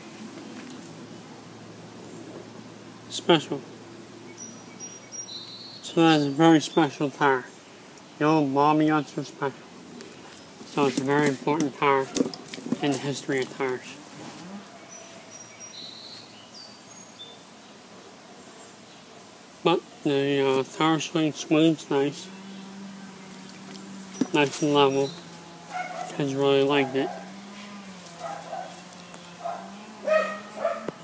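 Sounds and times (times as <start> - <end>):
birds chirping: 0.0 - 31.0
low hum: 21.7 - 31.0
dog barking faintly: 25.7 - 31.0.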